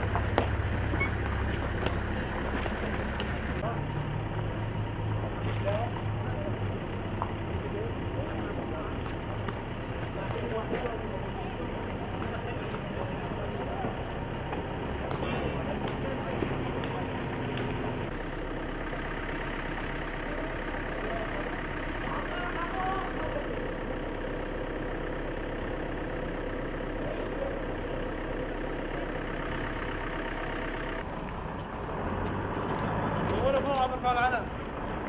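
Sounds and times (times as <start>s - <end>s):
pickup truck engines driving past: 0.0s - 35.0s.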